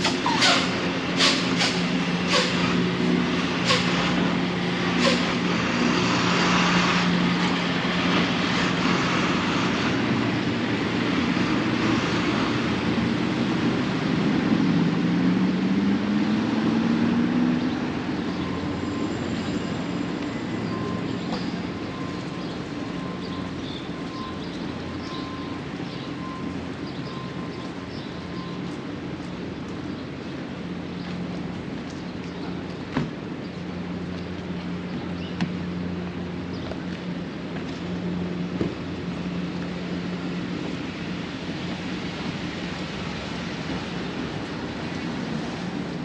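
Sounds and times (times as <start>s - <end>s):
truck engine idling and revving: 0.0s - 29.5s
city traffic noise: 0.0s - 46.0s.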